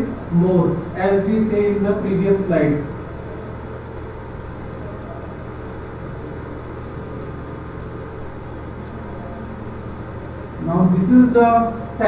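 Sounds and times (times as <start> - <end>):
steady low hum with hiss: 0.0 - 12.0.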